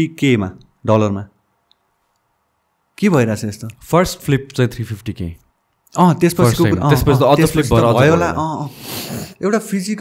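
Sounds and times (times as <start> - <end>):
man talking: 3.0 - 8.8.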